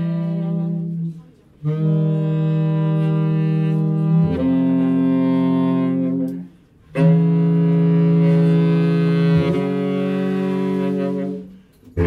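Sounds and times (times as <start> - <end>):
baritone saxophones holding low note: 0.0 - 12.0.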